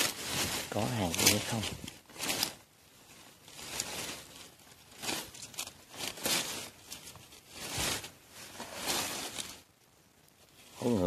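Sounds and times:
dry leaves rustling and crackling: 0.0s - 11.0s.

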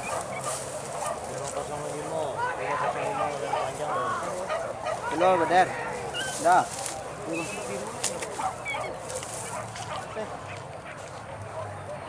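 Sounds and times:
dogs yelping: 0.0s - 11.1s.

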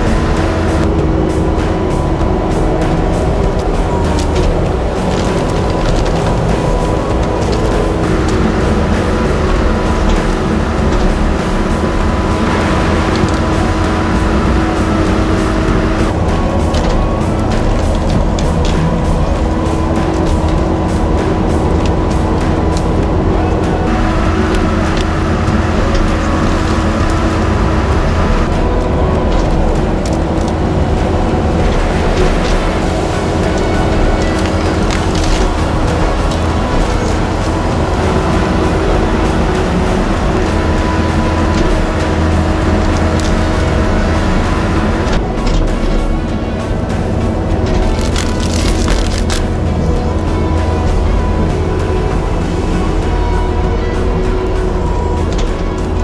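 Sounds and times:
diesel engine droning: 0.0s - 56.0s.

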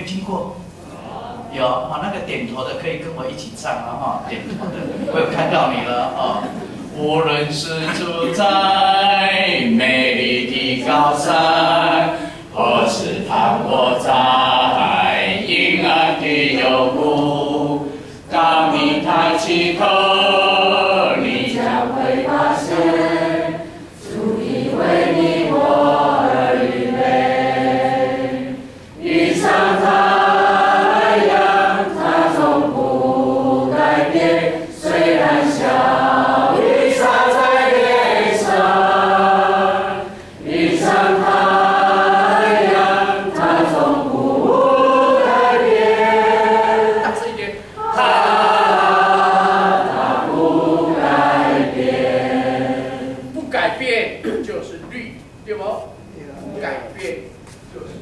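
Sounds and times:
congregation singing: 4.6s - 53.5s.

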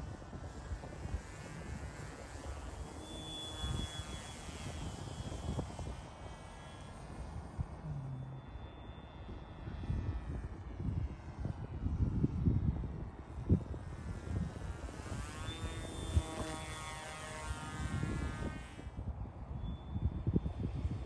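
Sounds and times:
model plane propeller whine: 0.0s - 21.0s
wind buffeting microphone: 0.0s - 21.0s.

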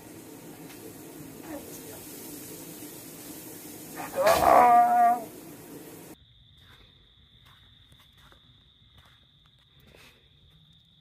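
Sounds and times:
low room noise hiss: 0.0s - 6.2s.

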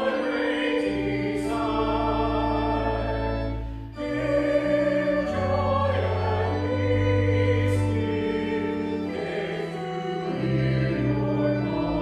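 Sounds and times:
hymn singing with held chords: 0.0s - 12.0s.

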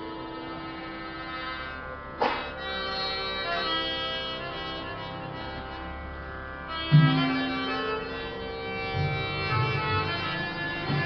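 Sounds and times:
harmonium chord: 0.0s - 11.0s.

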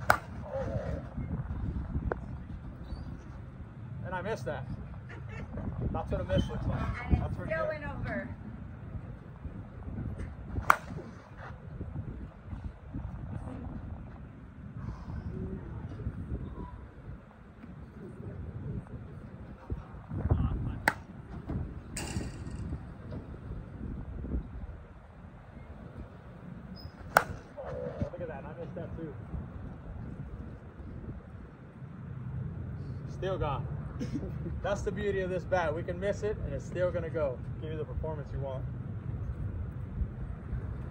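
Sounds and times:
bat striking softball: 0.0s - 0.4s, 10.6s - 11.1s, 20.8s - 21.1s, 22.0s - 22.8s, 27.0s - 27.5s
low wind rumble on microphone: 0.0s - 40.9s.

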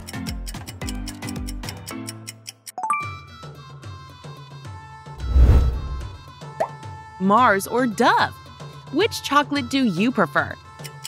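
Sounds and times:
background music: 0.0s - 11.0s
deep transition sound effect: 5.2s - 6.2s.

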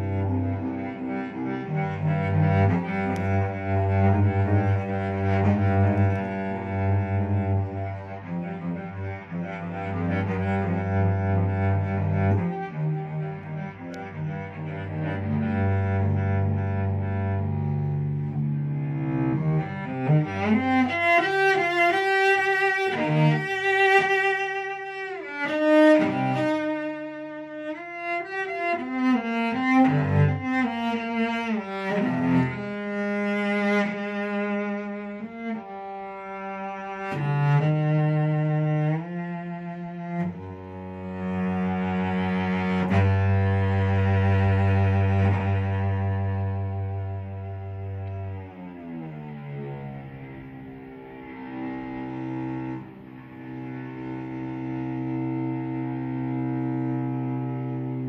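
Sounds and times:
solo cello bowed: 0.0s - 58.0s.

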